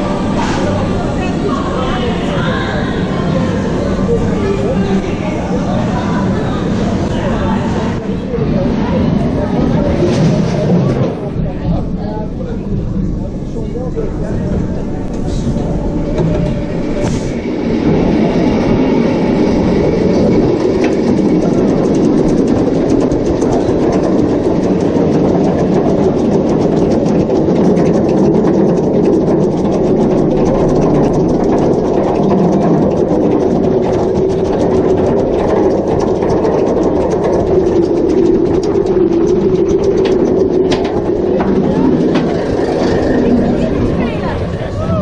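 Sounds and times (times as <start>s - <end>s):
lift chain rumbling: 0.0s - 45.0s
ratchet clicking rapidly: 16.0s - 44.0s.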